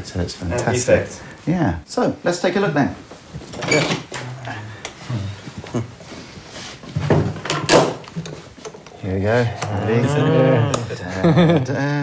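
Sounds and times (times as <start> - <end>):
low voices murmuring: 4.1 - 6.4, 8.8 - 12.0.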